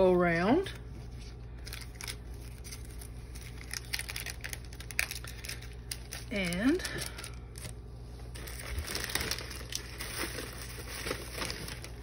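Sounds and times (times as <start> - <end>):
plastic packaging crinkling: 1.1 - 12.0.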